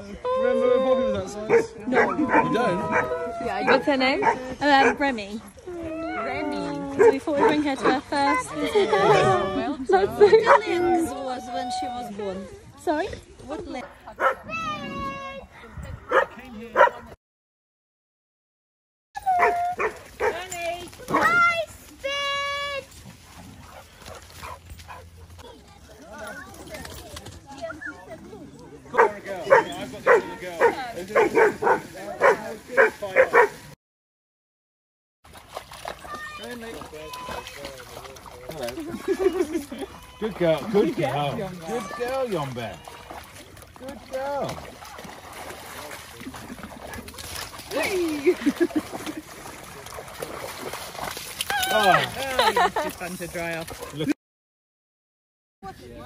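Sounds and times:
dogs splashing in water: 1.4s - 15.4s, 19.2s - 28.2s, 28.9s - 33.8s, 35.3s - 54.2s
dogs barking and yipping: 1.5s - 9.2s, 10.2s - 11.1s, 13.8s - 14.9s, 16.1s - 17.0s, 19.2s - 21.4s, 23.2s - 25.8s, 28.9s - 33.6s.

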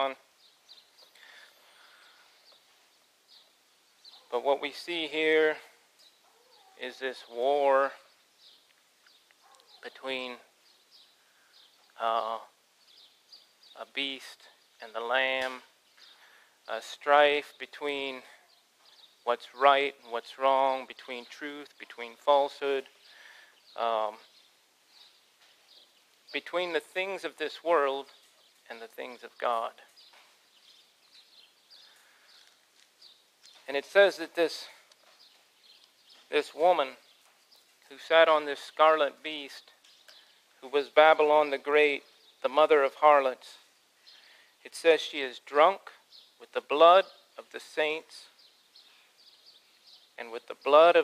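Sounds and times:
faint bird chirps: 0.0s - 4.8s, 5.6s - 16.9s, 28.0s - 33.7s, 39.5s - 40.6s.

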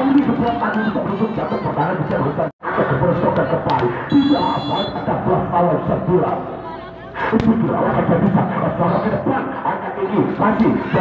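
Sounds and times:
crowd voices: 0.0s - 11.0s
referee's whistle: 4.1s - 5.0s.

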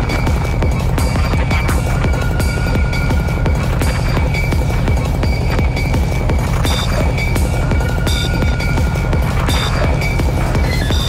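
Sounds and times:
pulsing electronic bassline: 0.0s - 11.0s
steady beat: 0.0s - 11.0s.

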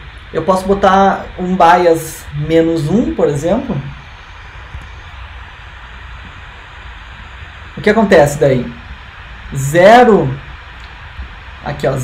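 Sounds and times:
low rumble: 0.0s - 12.0s
room tone hiss: 0.0s - 12.0s.

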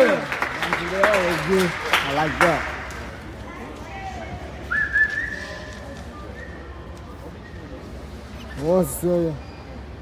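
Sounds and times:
faint crowd chatter: 0.0s - 10.0s.

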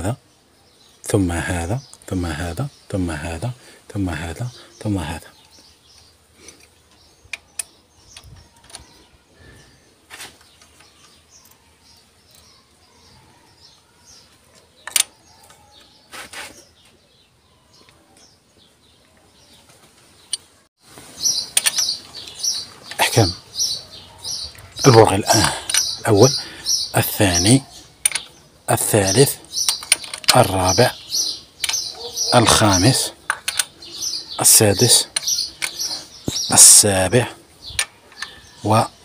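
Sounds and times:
man's voice: 0.0s - 0.2s, 1.1s - 5.4s, 22.9s - 23.4s, 24.7s - 27.7s, 28.7s - 29.5s, 30.3s - 31.0s, 32.2s - 33.2s, 34.4s - 35.2s, 36.3s - 37.4s, 38.6s - 39.0s
birds chirping: 0.0s - 39.0s
metallic clicks of hand tools: 21.5s - 21.9s, 25.4s - 25.9s, 28.0s - 28.3s, 29.6s - 30.4s, 33.3s - 33.8s.

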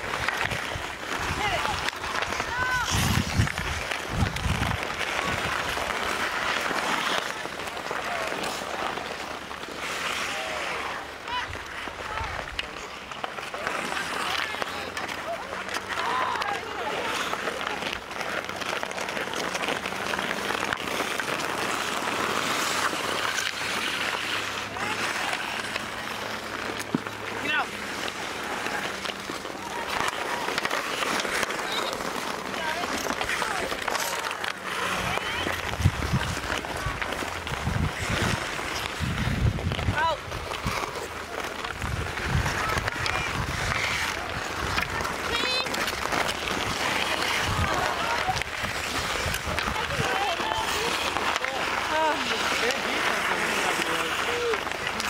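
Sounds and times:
hockey stick hitting puck: 0.0s - 55.0s
people shouting and chattering: 0.0s - 55.0s
skates scraping ice: 0.0s - 55.0s
wind buffeting microphone: 2.6s - 5.4s, 35.5s - 40.8s.

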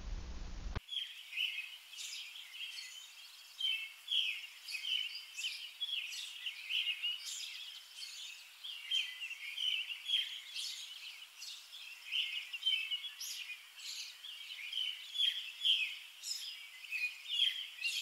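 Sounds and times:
birds chirping: 0.0s - 18.0s.

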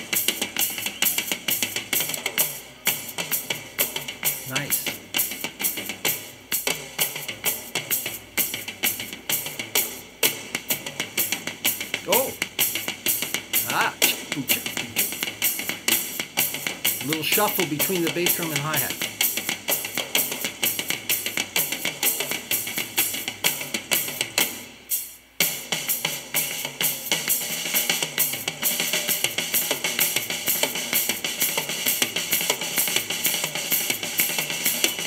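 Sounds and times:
drum kit solo: 0.0s - 35.0s.

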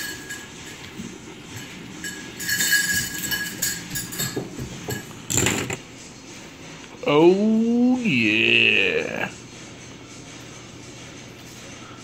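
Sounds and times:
metal fidget spinners clinking: 0.0s - 5.8s.

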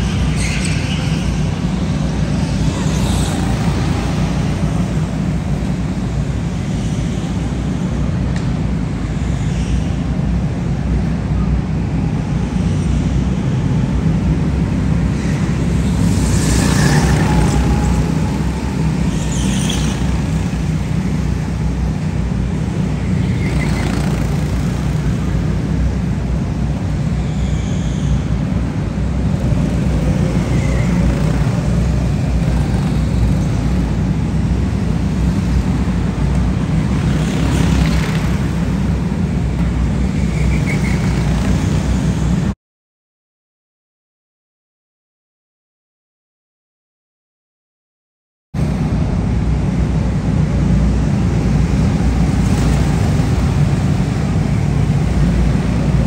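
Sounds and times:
go-karts low rumble: 0.0s - 9.1s, 10.1s - 42.5s
tyre squeals: 27.2s - 28.4s.

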